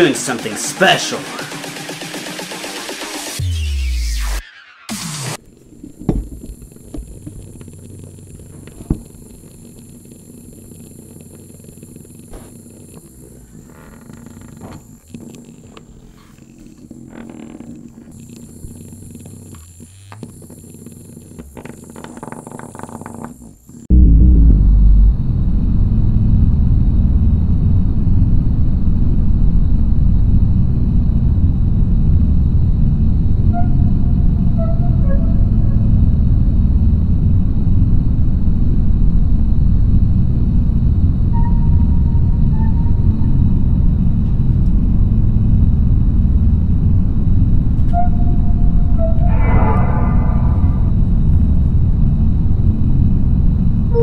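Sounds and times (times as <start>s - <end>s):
deep rumbling ambient drone: 5.3s - 54.0s.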